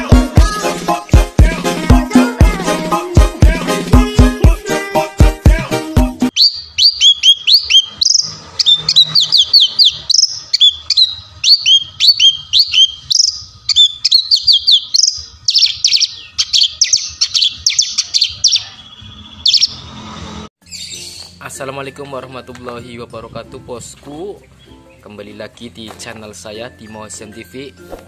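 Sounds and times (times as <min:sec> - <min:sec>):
bird singing high chirps: 0:06.3 - 0:21.4.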